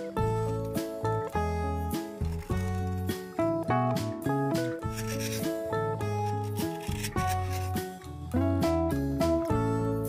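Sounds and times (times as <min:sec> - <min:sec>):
acoustic guitar music: 0:00.0 - 0:10.0
chisel scraping bamboo: 0:02.0 - 0:03.3, 0:04.8 - 0:07.9.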